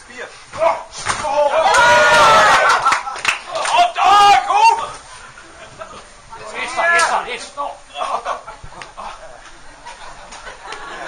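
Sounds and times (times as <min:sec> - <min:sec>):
loud drawn-out shout: 0:00.6 - 0:05.0.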